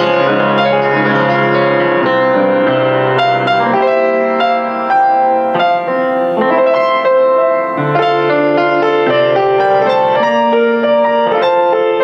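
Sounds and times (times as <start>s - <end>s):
piano melody over chords: 0.0s - 12.0s.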